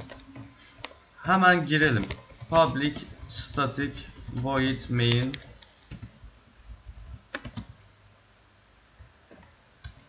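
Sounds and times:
computer keyboard keystrokes: 2.0 - 7.9, 9.2 - 10.0.

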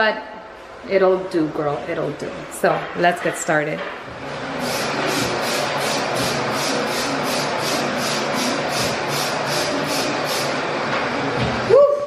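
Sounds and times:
spray bottle spraying: 4.6 - 10.6.

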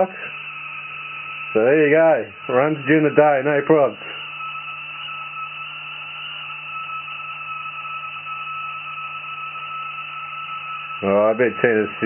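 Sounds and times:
electrical hum: 0.0 - 12.0
high-pitched whine: 0.0 - 12.0.

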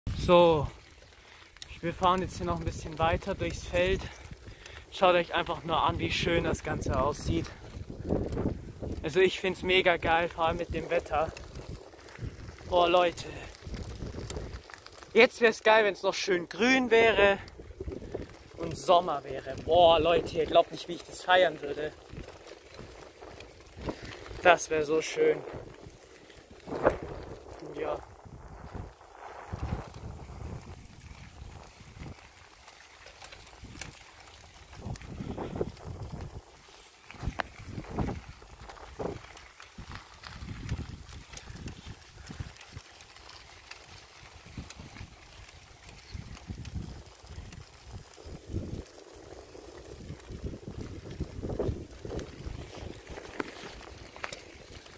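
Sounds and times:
bicycle tyres on gravel: 0.1 - 54.9.

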